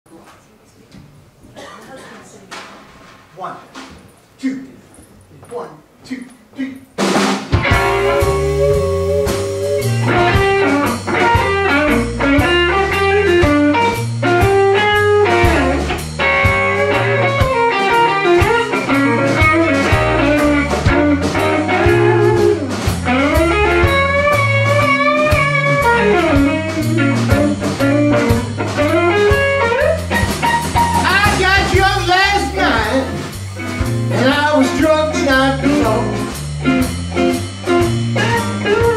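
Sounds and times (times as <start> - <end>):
bass: 3.3 - 38.9
drum kit: 7.0 - 38.9
electric guitar: 7.5 - 38.9.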